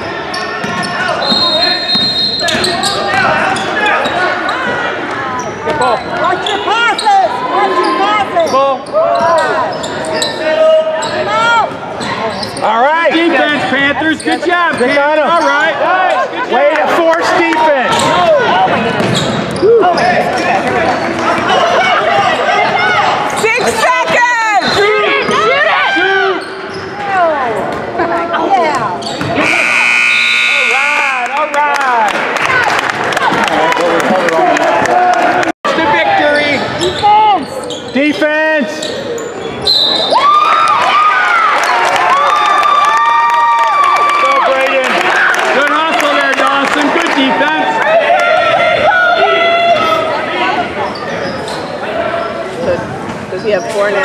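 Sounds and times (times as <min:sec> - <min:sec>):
whistle blowing: 0:01.2 - 0:03.0, 0:29.4 - 0:31.4, 0:39.6 - 0:40.2
people shouting in echoing hall: 0:47.4 - 0:50.9.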